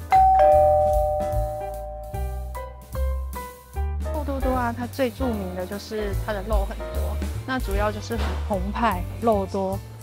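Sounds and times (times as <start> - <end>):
two-note ding-dong chime: 0.0 - 2.9
background music with beat: 0.0 - 10.0.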